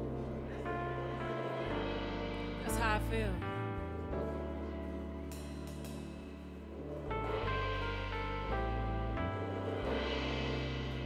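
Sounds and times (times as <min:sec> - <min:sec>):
electric bass line: 0:00.0 - 0:11.0
keyboard chords: 0:00.0 - 0:11.0.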